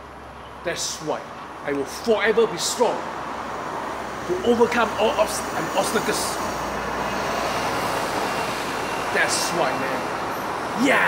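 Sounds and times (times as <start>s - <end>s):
road traffic rushing: 0.0s - 11.0s.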